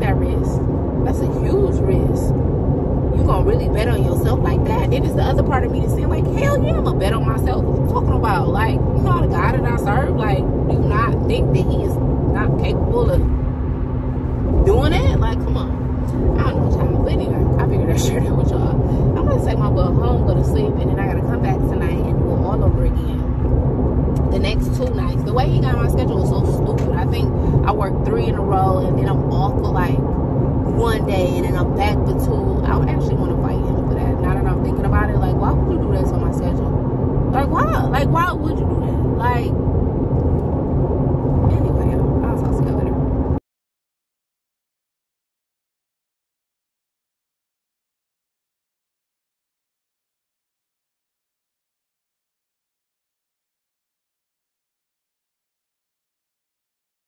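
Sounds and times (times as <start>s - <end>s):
woman's voice: 0.0s - 2.3s, 3.1s - 13.3s, 14.5s - 23.3s, 24.2s - 30.1s, 30.7s - 36.8s, 37.4s - 39.6s, 41.4s - 43.0s
car cabin road and engine rumble: 0.0s - 43.4s.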